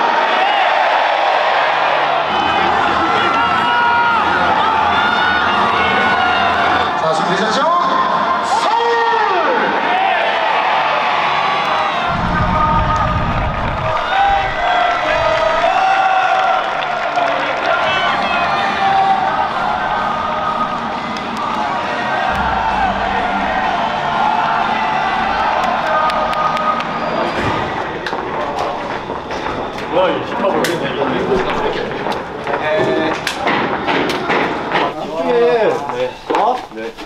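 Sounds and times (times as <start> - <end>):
stadium crowd cheering and chanting: 0.0 - 36.3.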